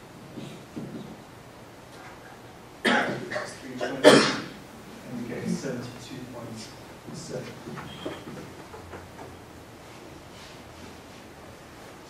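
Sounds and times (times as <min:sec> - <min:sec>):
man coughing loudly: 0:02.8 - 0:04.6.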